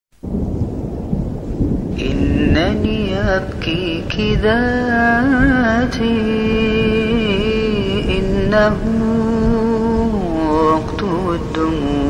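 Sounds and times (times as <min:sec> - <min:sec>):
low steady rumbling: 0:00.2 - 0:12.0.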